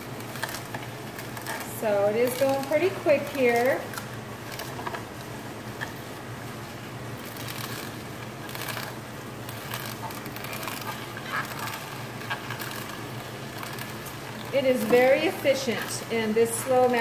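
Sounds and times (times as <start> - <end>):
celery crackling and squeaking: 0.0 - 17.0
juicer motor humming: 0.0 - 17.0.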